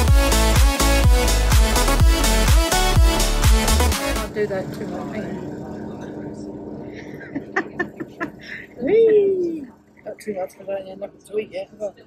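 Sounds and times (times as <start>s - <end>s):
electronic dance music: 0.0s - 4.3s
low hum: 4.2s - 12.0s.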